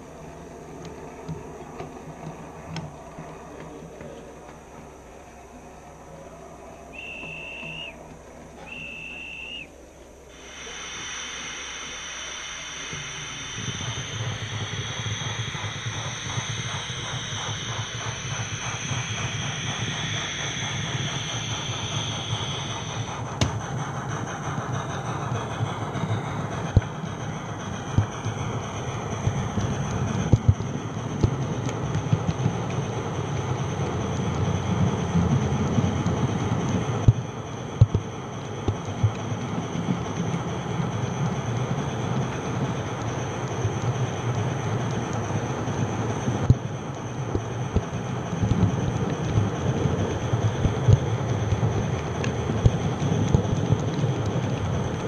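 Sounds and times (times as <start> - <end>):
model train running noise: 0.0 - 55.0
steady hiss: 0.0 - 55.0
model train toots: 6.9 - 31.8
clicks over the track: 36.0 - 40.4, 42.2 - 55.0.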